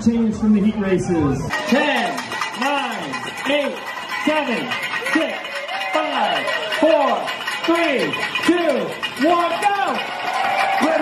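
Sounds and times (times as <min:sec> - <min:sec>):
person shouting a countdown: 0:01.5 - 0:10.1.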